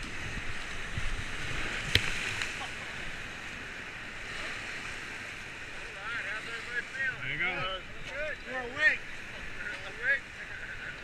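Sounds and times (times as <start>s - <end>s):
wind buffeting microphone: 0.0s - 4.9s
water splashing: 0.0s - 11.0s.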